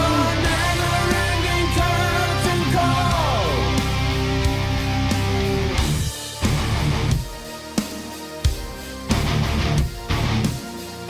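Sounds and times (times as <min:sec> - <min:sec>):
rock song with guitars and drums: 0:00.0 - 0:11.0.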